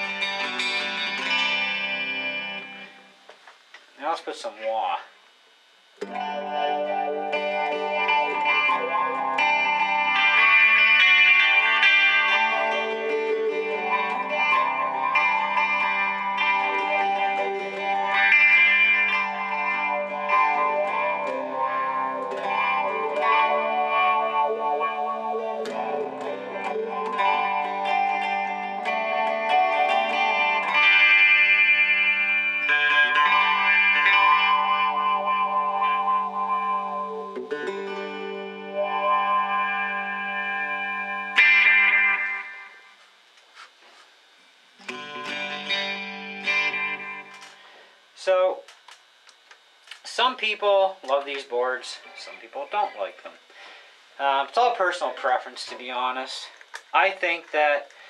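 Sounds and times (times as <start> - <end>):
electric guitar chords with chorus: 0.0 - 3.4, 5.9 - 43.7, 44.8 - 58.0.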